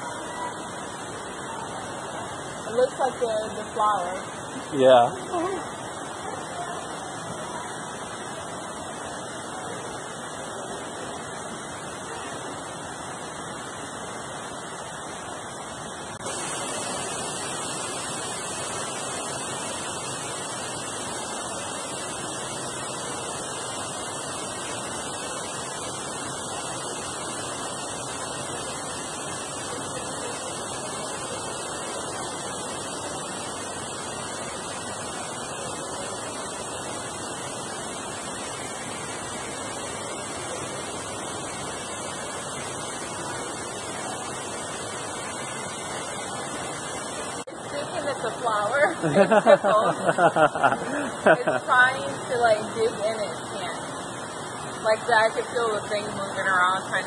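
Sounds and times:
steady rushing noise: 0:00.0 - 0:57.0.

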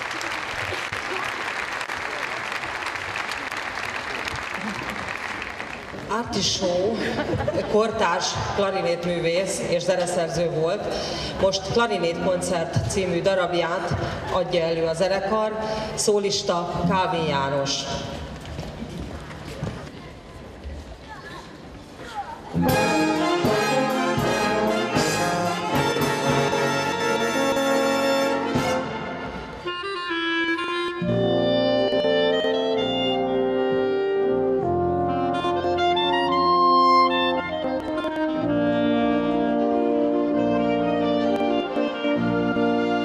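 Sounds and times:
solo clarinet: 0:22.6 - 0:43.0
wind band playing: 0:22.6 - 0:43.0.

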